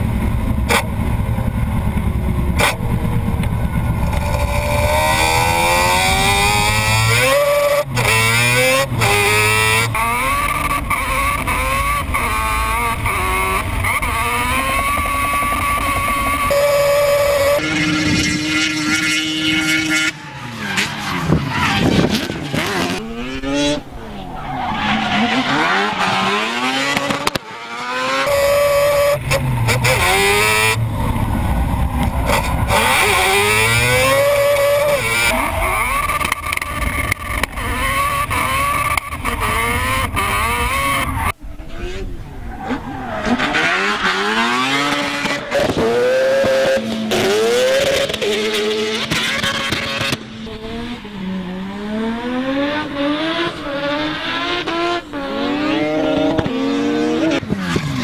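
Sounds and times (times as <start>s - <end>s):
car engine revving hard: 4.0s - 20.2s, 21.2s - 42.1s, 42.7s - 58.0s
tyre squeal: 24.0s - 26.6s.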